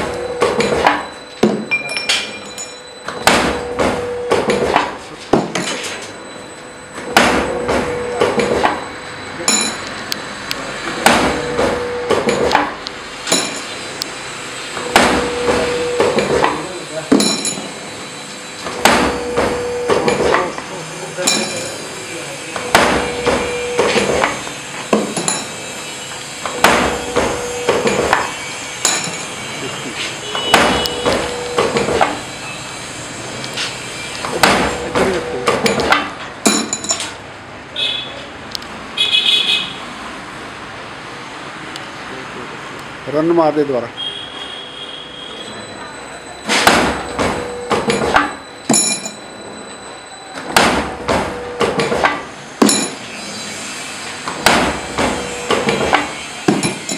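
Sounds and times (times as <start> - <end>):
sharp metallic knocks: 0.3 - 6.0, 7.0 - 8.9, 10.9 - 13.8, 14.8 - 17.8, 18.6 - 20.5, 21.2 - 21.8, 22.6 - 25.7, 26.5 - 29.5, 30.3 - 32.3, 34.3 - 37.2, 46.4 - 49.4, 50.4 - 53.1, 54.2 - 56.9
machine motor hum: 6.1 - 36.4, 50.5 - 56.9.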